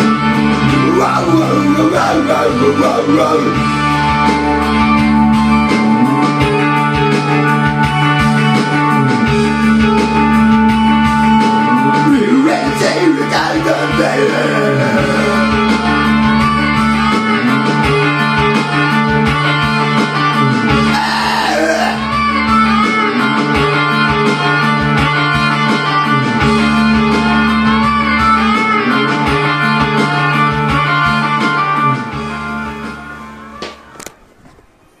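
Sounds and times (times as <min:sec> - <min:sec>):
guitar-led instrumental backing track: 0:00.0 - 0:35.0
click: 0:33.6 - 0:34.2.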